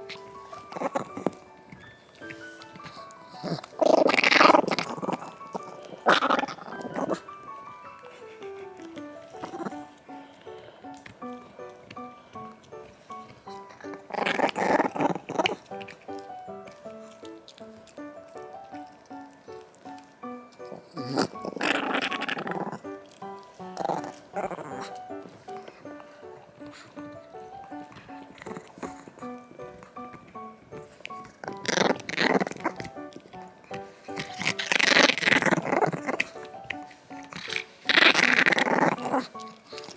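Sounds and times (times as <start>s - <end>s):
background music: 0.0s - 39.9s
small dog growling: 0.5s - 1.4s, 3.2s - 7.3s, 8.8s - 12.5s, 13.1s - 18.0s, 20.7s - 30.1s, 30.7s - 39.9s.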